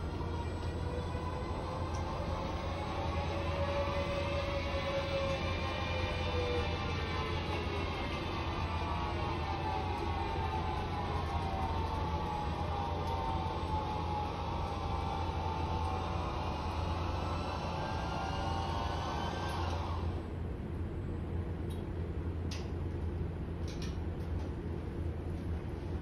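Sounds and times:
motor whine: 0:00.0 - 0:20.4
low room hum: 0:00.0 - 0:26.0.

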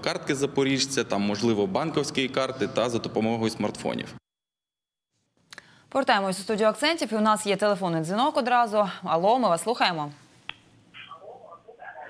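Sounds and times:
muffled sounds over telephone line: 0:10.9 - 0:12.0.

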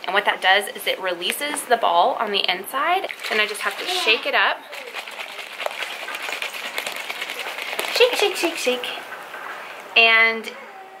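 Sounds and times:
ball rattling in shaken bottle: 0:03.0 - 0:08.9.

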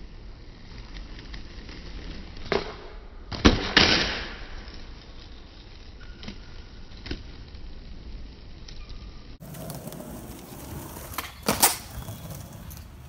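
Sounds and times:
skateboard wheels rolling: 0:00.0 - 0:13.0
skateboard slapping down: 0:09.4 - 0:13.0
skateboard tail popping: 0:09.4 - 0:13.0.

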